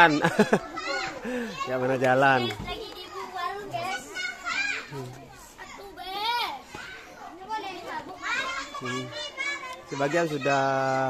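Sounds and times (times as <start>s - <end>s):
children chattering and calling out: 0.0s - 11.0s.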